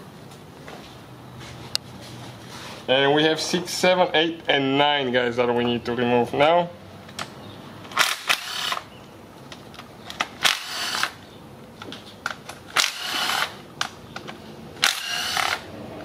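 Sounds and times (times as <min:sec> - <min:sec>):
power driver spinning bolts: 0:12.3 - 0:15.7.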